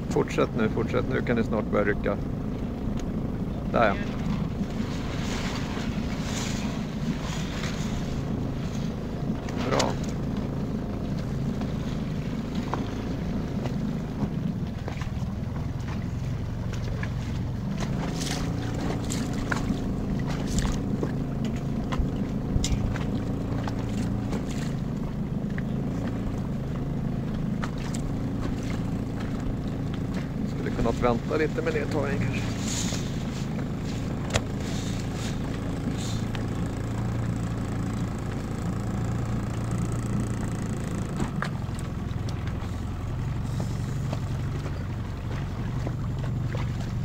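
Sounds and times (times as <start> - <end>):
boat motor running: 0.0 - 47.0.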